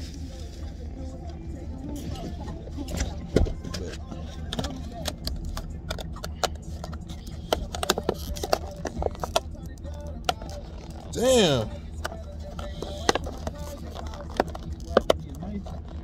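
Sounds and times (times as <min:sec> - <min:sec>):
low steady rumble: 0:00.0 - 0:16.0.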